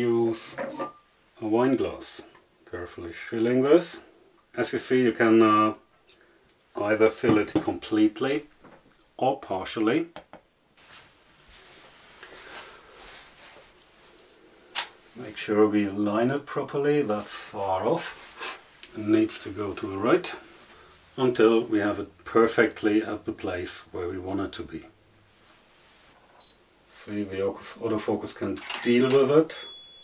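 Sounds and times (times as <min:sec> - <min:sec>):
camera autofocus beep: 0:26.4 - 0:26.6, 0:28.6 - 0:30.0.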